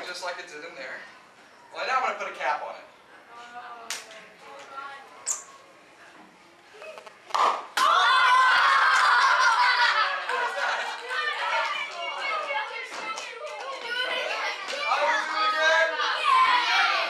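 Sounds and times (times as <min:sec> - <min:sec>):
children screaming and cheering: 0:07.8 - 0:17.0.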